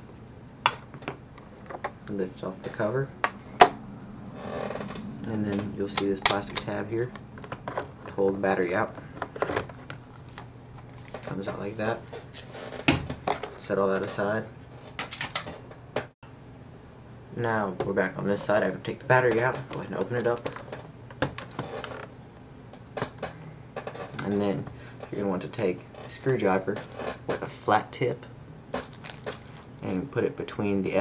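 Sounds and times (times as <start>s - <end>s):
plastic cover rustling: 28.8s - 29.7s.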